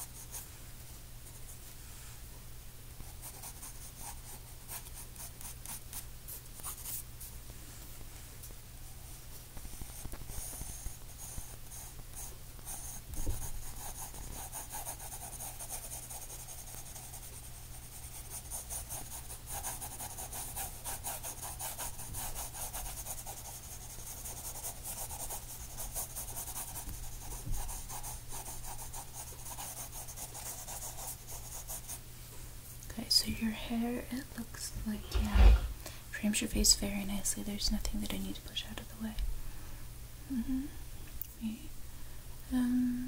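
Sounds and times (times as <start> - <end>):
pencil scratching on paper: 3.2 - 6.0, 9.7 - 32.0.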